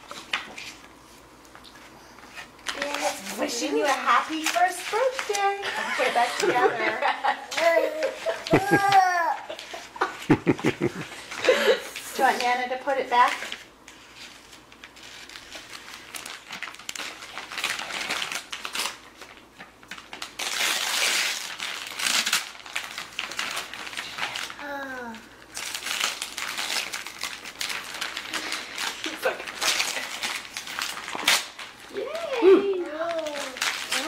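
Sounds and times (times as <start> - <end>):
wrapping paper crinkling and tearing: 1.8 - 34.0.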